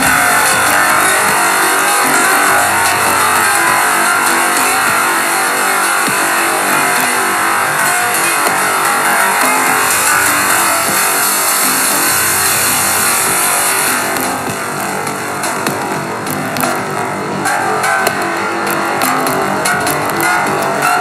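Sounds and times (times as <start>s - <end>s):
dense synth texture: 0.0s - 21.0s.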